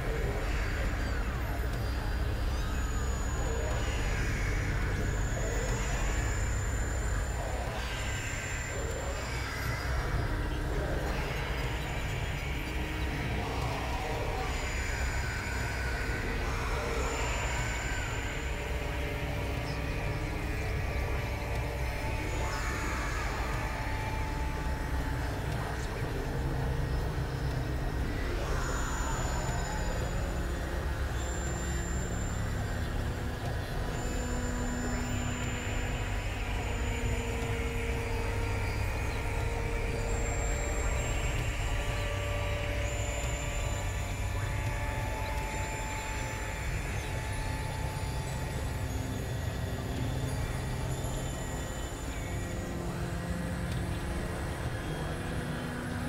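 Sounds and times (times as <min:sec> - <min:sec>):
low rumbling drone: 0:00.0 - 0:56.0.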